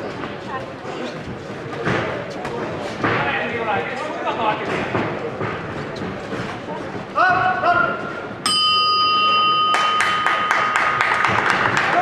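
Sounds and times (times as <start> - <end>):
boxing ring bell: 8.4 - 11.4
sharp claps: 9.7 - 12.0.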